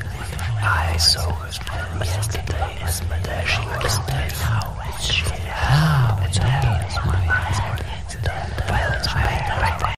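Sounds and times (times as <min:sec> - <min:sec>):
low murmured voice: 0:00.0 - 0:09.9
people whispering: 0:00.0 - 0:09.9.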